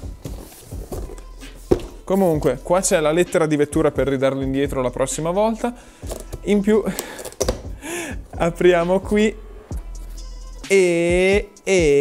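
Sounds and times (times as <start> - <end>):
scraping and rustling cardboard: 0.0 - 2.6.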